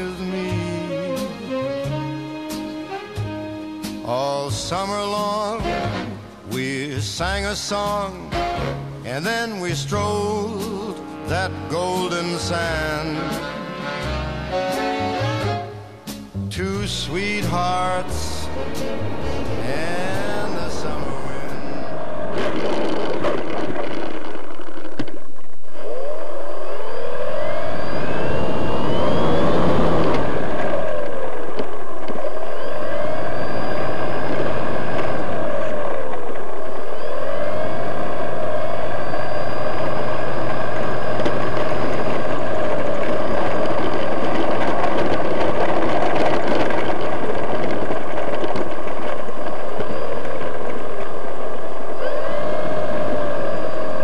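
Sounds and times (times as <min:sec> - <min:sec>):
electric motor and propeller whine: 0:17.2 - 0:54.0
rushing air: 0:25.5 - 0:54.0.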